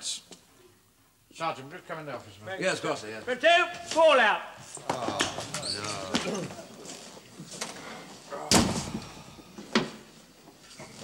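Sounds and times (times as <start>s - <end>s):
door shutting with a bang: 8.5s - 9.1s.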